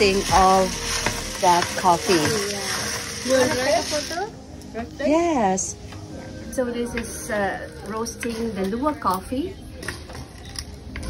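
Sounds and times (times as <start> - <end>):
coffee beans scraping in pan: 0.0 - 4.3.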